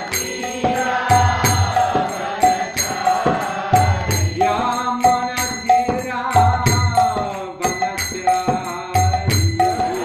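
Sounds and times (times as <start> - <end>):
hand cymbals struck in rhythm: 0.0 - 10.0
man singing a devotional chant: 0.0 - 10.0.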